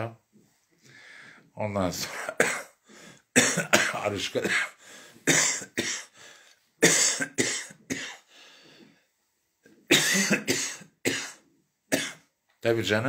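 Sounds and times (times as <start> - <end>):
woman coughing: 3.4 - 4.7, 5.3 - 6.1, 6.8 - 8.2, 9.9 - 12.2.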